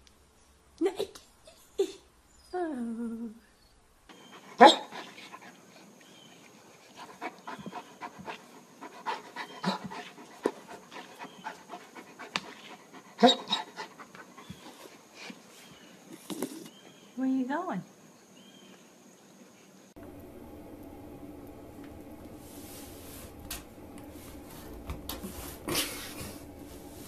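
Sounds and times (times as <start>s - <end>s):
dog panting: 4.1s - 15.5s
dog huffs: 7.0s - 15.5s.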